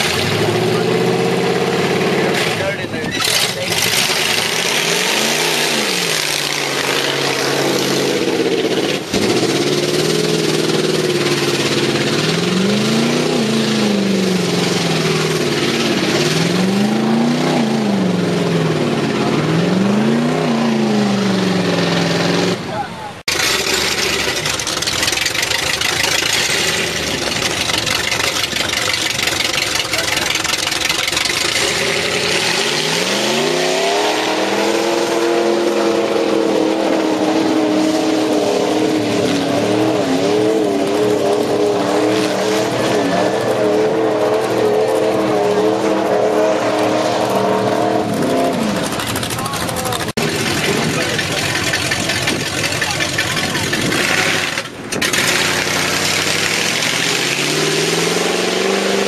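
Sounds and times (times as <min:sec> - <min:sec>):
truck engines revving: 0:00.0 - 0:59.0
dense rushing noise: 0:26.1 - 0:59.0.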